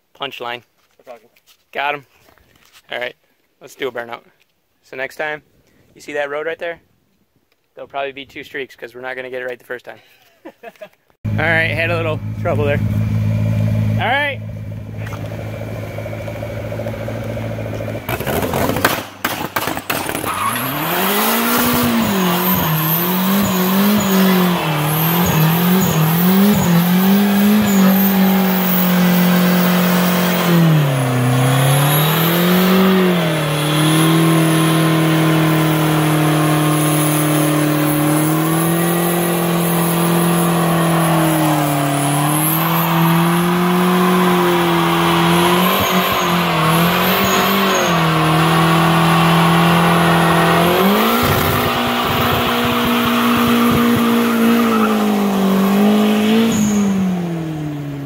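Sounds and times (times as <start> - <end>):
car engine revving high: 11.3 - 19.1, 19.8 - 58.0
tyres screeching: 17.8 - 57.3.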